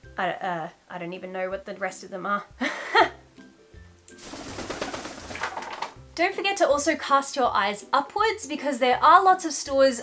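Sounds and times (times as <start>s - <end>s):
parrot wings flapping: 4.2s - 6.0s.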